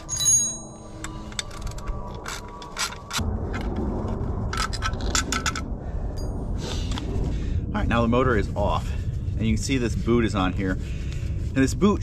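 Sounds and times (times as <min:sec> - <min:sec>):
metallic clink: 0:00.0 - 0:01.6.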